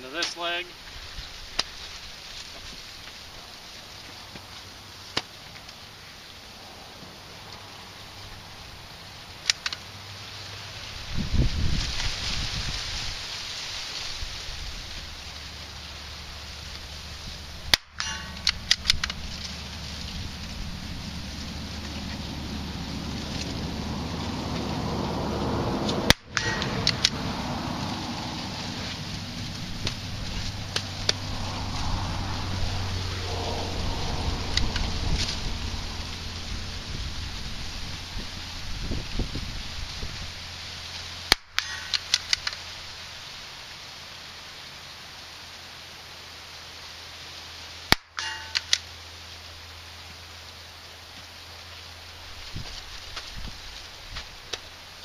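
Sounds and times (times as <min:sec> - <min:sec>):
corn rustling: 0:00.0 - 0:06.3, 0:07.5 - 0:43.6, 0:51.2 - 0:55.0
wind: 0:00.0 - 0:55.0.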